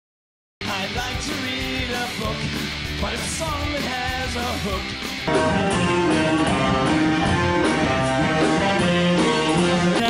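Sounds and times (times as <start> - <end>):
rock band with guitar: 0.6 - 10.0.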